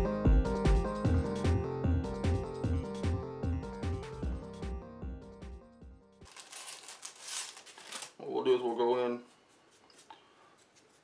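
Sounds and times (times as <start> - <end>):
background music: 0.0 - 6.3
rustling crinkling handling noise: 6.2 - 11.0.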